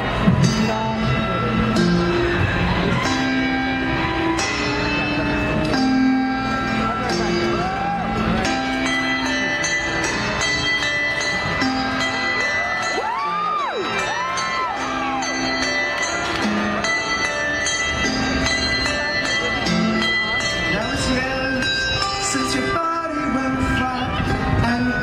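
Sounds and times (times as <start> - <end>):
crowd noise: 0.0 - 25.0
handbells ringing a tune: 0.2 - 25.0
audience whooping: 7.4 - 8.5, 12.6 - 16.4.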